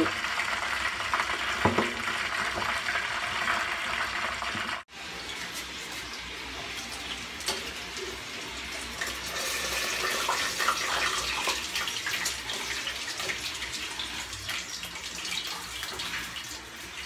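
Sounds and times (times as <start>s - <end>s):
meat deep-frying in oil: 0.0s - 17.0s.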